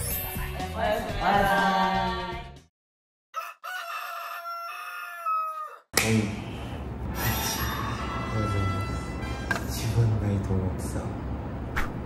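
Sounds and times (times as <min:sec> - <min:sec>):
music: 0:00.0 - 0:02.7, 0:07.2 - 0:10.0
rooster crowing: 0:03.3 - 0:05.9.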